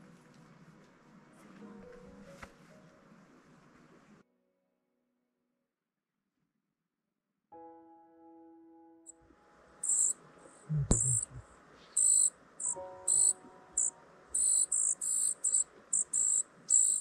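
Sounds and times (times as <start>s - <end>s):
insects chirring: 9.8s - 17.0s.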